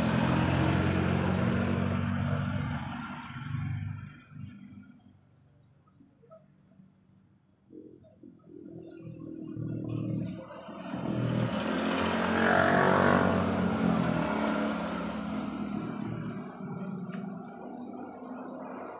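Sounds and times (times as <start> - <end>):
motor scooter passing: 0.0 - 4.9, 8.5 - 18.9.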